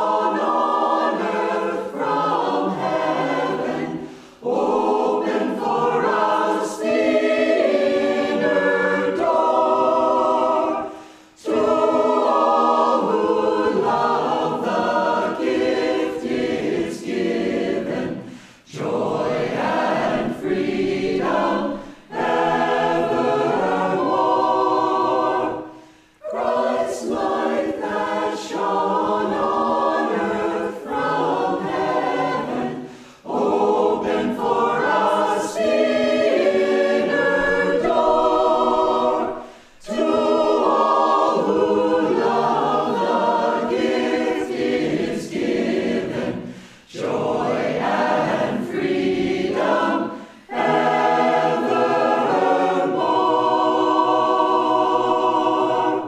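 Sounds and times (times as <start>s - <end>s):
mixed choir singing in harmony: 0.0s - 56.0s.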